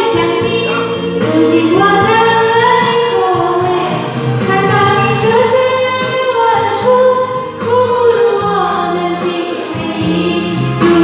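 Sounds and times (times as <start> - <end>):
recorded backing track: 0.0 - 11.0
woman singing into microphone: 0.0 - 11.0.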